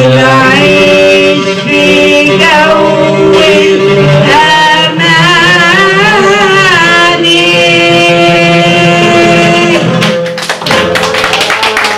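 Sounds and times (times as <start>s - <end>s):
hand clapping: 10.0s - 11.9s.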